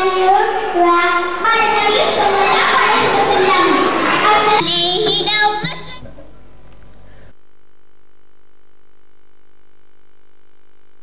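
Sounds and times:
girl singing into a microphone: 0:00.0 - 0:06.0
crowd chatter: 0:00.0 - 0:06.2.

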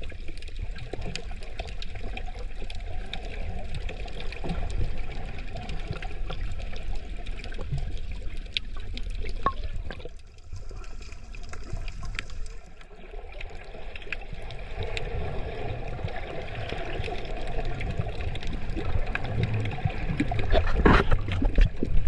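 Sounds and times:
muffled underwater water wash: 0:00.0 - 0:22.0.

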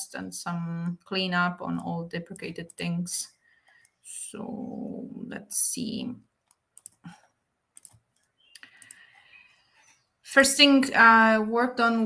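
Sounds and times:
computer keyboard clicks: 0:06.5 - 0:07.0, 0:07.8 - 0:09.1.

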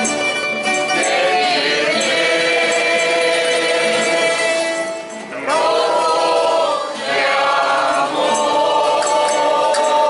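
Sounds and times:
group of voices singing: 0:00.9 - 0:10.0.

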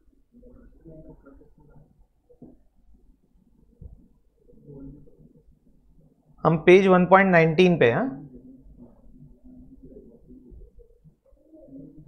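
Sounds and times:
faint bird cooing: 0:09.1 - 0:12.0.

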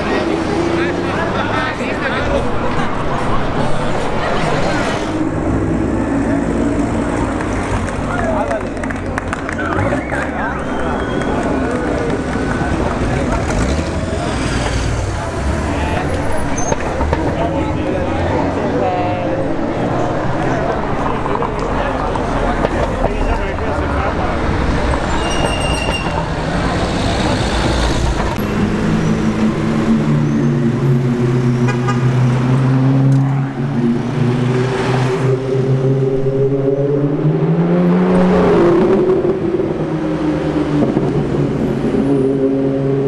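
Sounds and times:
cars moving past: 0:00.0 - 0:43.0
crowd voices: 0:00.0 - 0:43.0.

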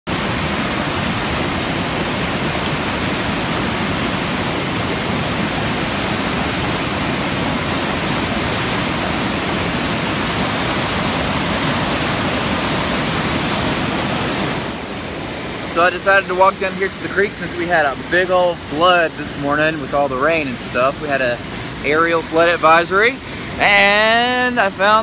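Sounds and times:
water rushing over rocks: 0:00.1 - 0:25.0.

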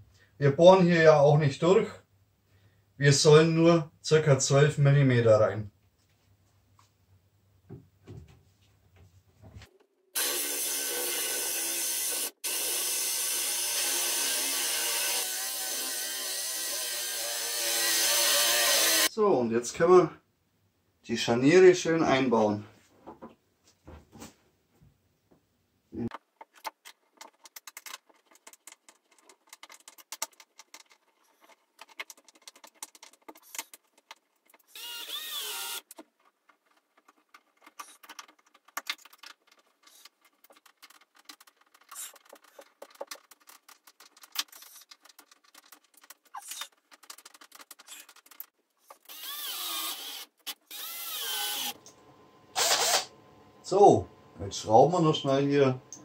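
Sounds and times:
cordless drill driving screws: 0:10.2 - 0:19.1, 0:34.7 - 0:36.0, 0:48.9 - 0:51.8, 0:52.6 - 0:53.1.

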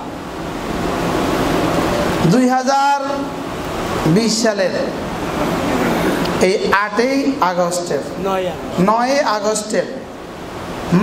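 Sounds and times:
steady rushing noise: 0:00.0 - 0:11.0
people talking: 0:02.2 - 0:03.3, 0:04.1 - 0:10.0.

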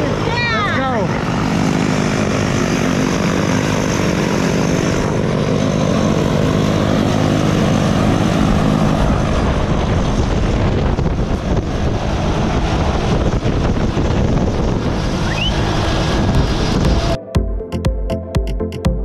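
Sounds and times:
propeller plane engine droning: 0:00.0 - 0:17.8
wind noise on microphone: 0:08.4 - 0:17.2.

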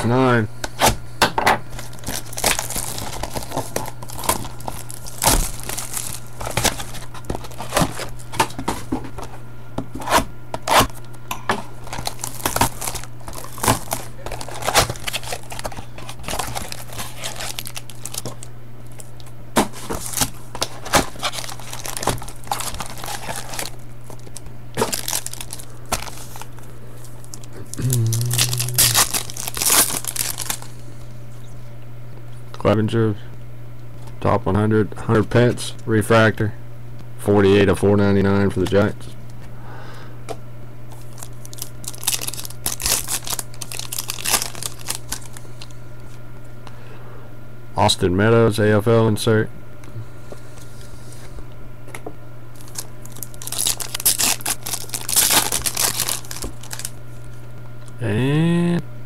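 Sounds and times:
plastic shrink wrap crinkling and tearing: 0:01.7 - 0:09.4, 0:11.7 - 0:30.8, 0:40.9 - 0:45.7, 0:52.6 - 0:57.3.

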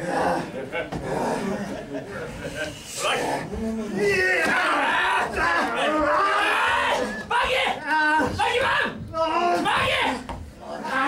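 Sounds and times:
men shouting: 0:03.0 - 0:11.0.

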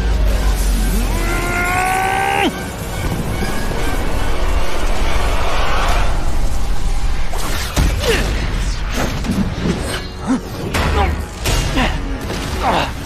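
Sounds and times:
dramatic score: 0:00.0 - 0:13.0
rushing noise with deep rumble: 0:02.7 - 0:09.5.

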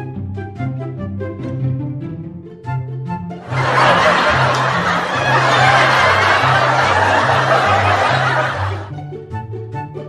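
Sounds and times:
canned laughter: 0:03.4 - 0:08.9.

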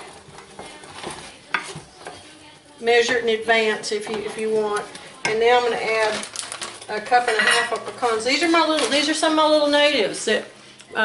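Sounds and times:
spoon scraping saucepan: 0:00.0 - 0:10.2.

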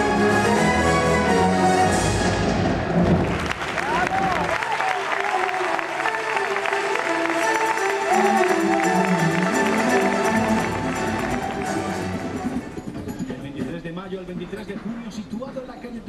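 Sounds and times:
circus show music: 0:00.0 - 0:16.0
audience applauding: 0:03.0 - 0:12.8.

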